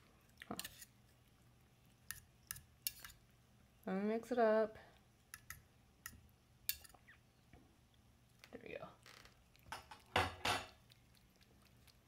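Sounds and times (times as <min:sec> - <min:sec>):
fork stirring wet cat food: 0:00.0 - 0:03.7, 0:04.9 - 0:07.2, 0:07.8 - 0:12.0.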